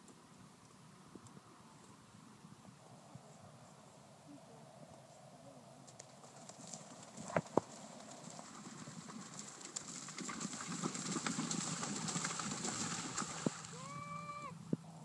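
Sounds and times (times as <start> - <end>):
horse hoofbeats on turf: 6.0 - 13.7
horse splashing through water: 6.0 - 13.9.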